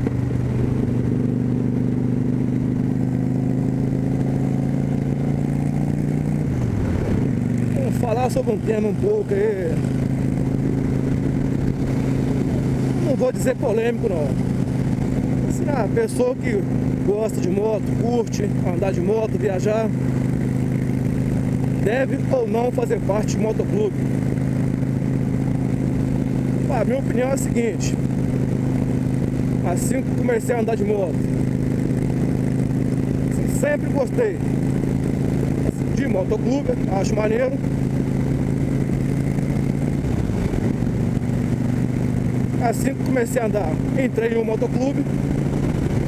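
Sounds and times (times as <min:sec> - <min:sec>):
motorcycle engine running: 0:00.0 - 0:46.0
wind and road noise: 0:00.0 - 0:46.0.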